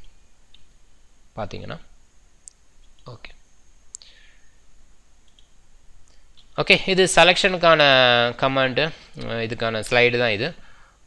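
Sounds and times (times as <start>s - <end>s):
computer mouse clicks: 5.2s - 6.5s.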